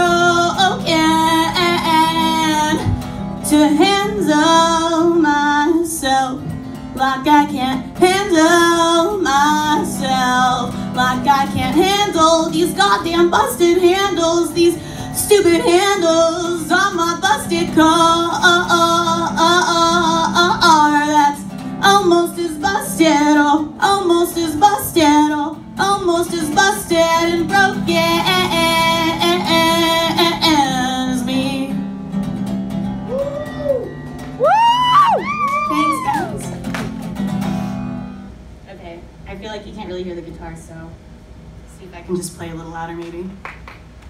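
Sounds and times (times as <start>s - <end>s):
acoustic guitar: 0.0s - 38.6s.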